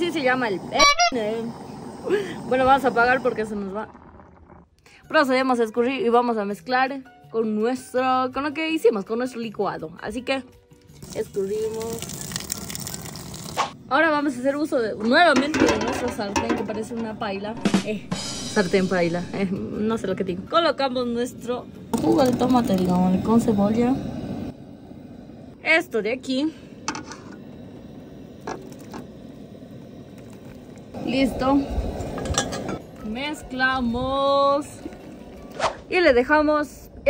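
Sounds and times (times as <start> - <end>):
water pouring onto brick: 10.9 - 13.7
water splashing on concrete: 11.0 - 13.7.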